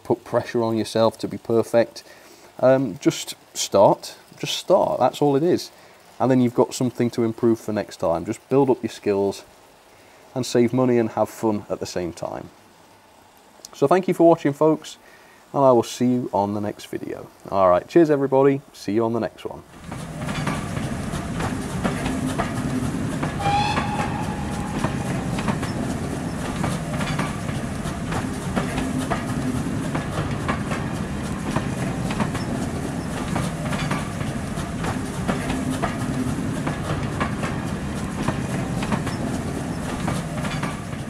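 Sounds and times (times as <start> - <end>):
wheels clicking over rail joints: 19.6 - 41.0
train rumbling on rails: 19.7 - 41.0
train whistle: 23.3 - 26.4.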